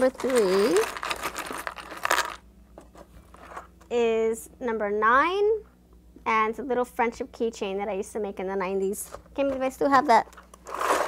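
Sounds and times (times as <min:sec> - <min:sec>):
rummaging through small trinkets: 0:00.0 - 0:03.8.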